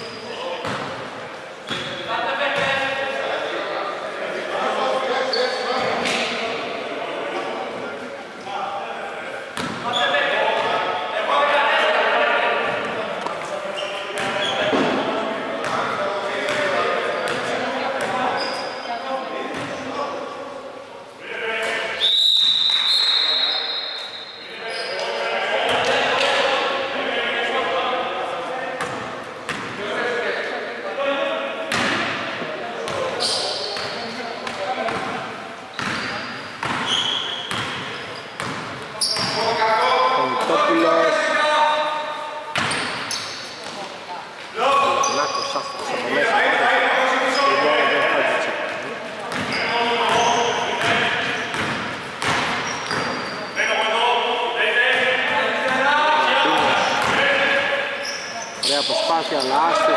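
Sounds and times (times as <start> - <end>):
voices echoing in a hall: 0.0 - 59.9
high steady whistle: 22.0 - 24.4.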